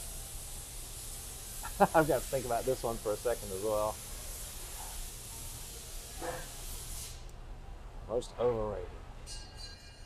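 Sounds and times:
steady high hiss: 0.0 - 7.4.

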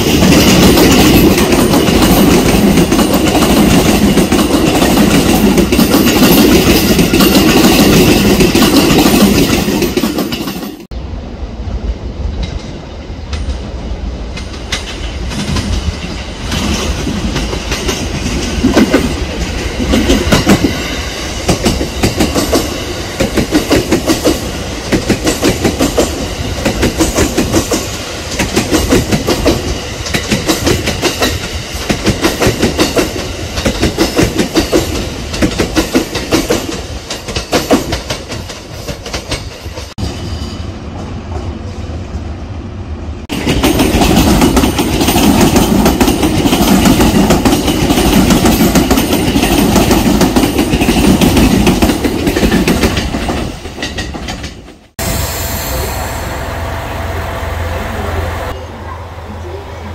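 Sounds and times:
train wheels clicking over rail joints: 0.0 - 10.9, 12.3 - 40.0, 43.3 - 55.0
electric train passing: 0.0 - 59.9.

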